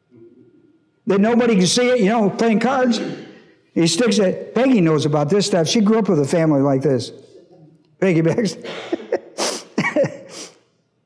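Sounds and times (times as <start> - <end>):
man laughing: 8.2 - 10.5.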